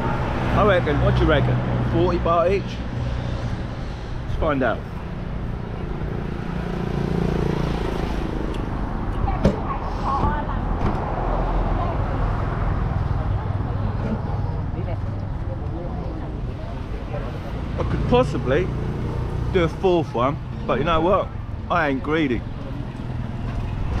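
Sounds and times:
road traffic rumble: 0:00.0 - 0:24.0.

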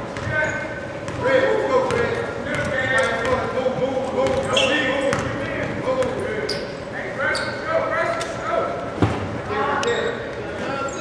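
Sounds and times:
crowd and player voices: 0:00.0 - 0:11.0
basketball bouncing: 0:01.1 - 0:04.5, 0:05.1 - 0:06.2
short high squeaks: 0:04.5 - 0:04.9.

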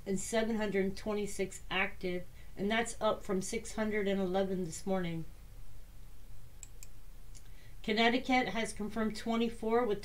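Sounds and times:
computer mouse clicks: 0:06.6 - 0:07.5.

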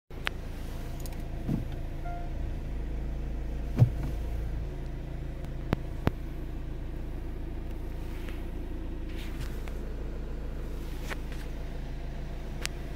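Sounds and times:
car engine idling: 0:00.1 - 0:12.9.

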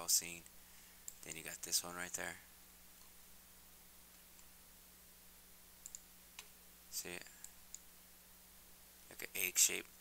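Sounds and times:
faint electrical hum: 0:00.0 - 0:10.0
computer mouse clicks: 0:01.0 - 0:01.4, 0:05.8 - 0:06.5, 0:07.4 - 0:07.9.

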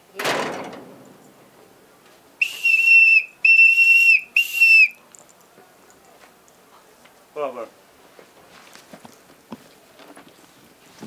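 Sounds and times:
whistle blasts: 0:02.4 - 0:05.0.

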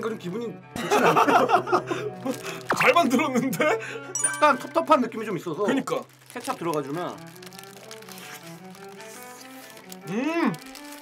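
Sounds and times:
paper wrappers crinkling: 0:02.0 - 0:03.3, 0:04.7 - 0:11.0
simple tune of held notes: 0:04.2 - 0:05.4.

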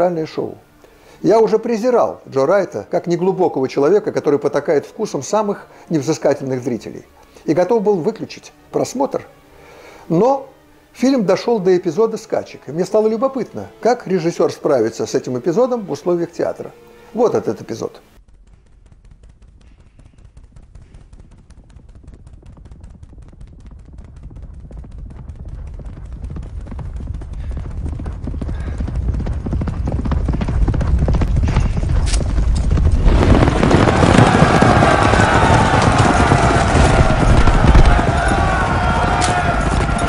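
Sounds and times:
galloping horse hoofbeats: 0:18.3 - 0:40.0
crowd shouting: 0:33.1 - 0:40.0.

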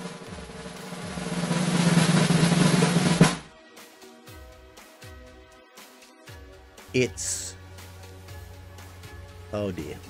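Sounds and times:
snare drum roll: 0:00.0 - 0:03.5.

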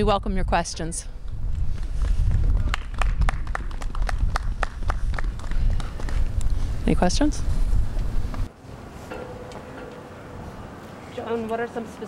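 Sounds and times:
wind rumble on microphone: 0:00.0 - 0:08.5
people clapping: 0:02.0 - 0:06.3.

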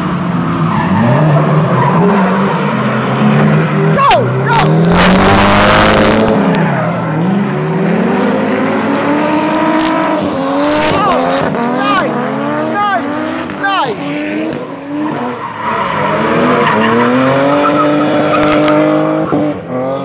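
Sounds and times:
car engines revving hard: 0:00.0 - 0:20.0.

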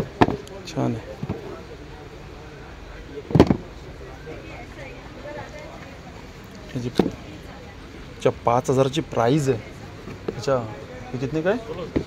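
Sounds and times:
faint background chatter: 0:00.0 - 0:12.0
loud thump: 0:03.3 - 0:03.7.

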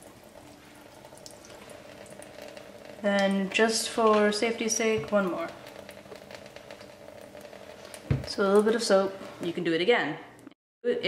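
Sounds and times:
tap water splashing into sink: 0:00.0 - 0:09.5.

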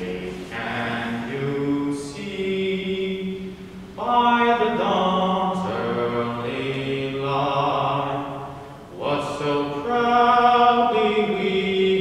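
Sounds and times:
person singing unaccompanied: 0:00.0 - 0:12.0.

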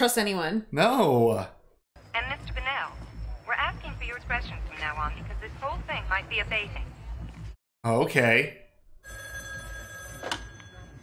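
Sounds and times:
telephone ringing: 0:09.0 - 0:11.0.

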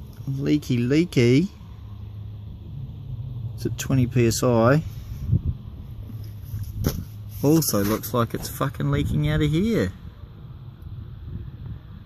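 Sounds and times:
wind rumble on microphone: 0:02.2 - 0:12.0.

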